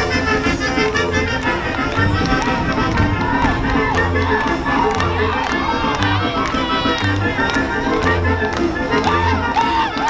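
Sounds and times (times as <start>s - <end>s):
band playing latin music: 0.0s - 10.0s
crowd shouting and cheering: 0.0s - 10.0s.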